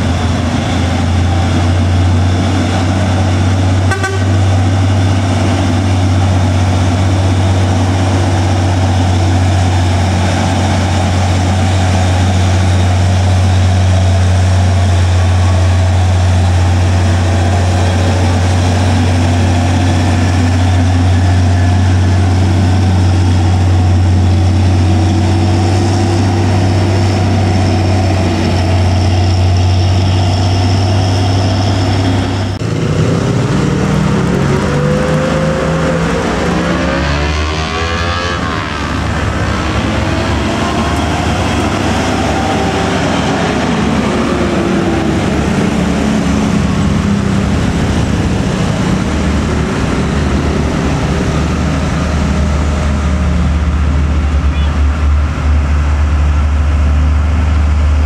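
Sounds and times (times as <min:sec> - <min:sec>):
truck diesel engine droning: 0:00.0 - 0:58.0.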